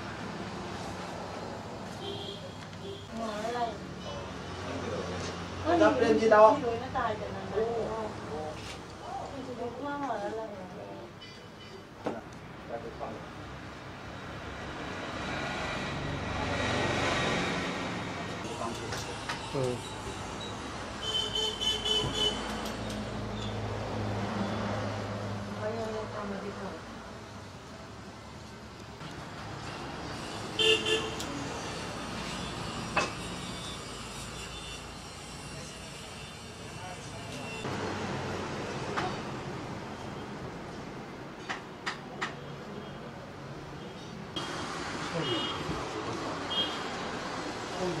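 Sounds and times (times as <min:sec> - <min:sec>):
road vehicle passing: 0:12.9 - 0:21.0, 0:22.3 - 0:33.6, 0:37.6 - 0:41.4.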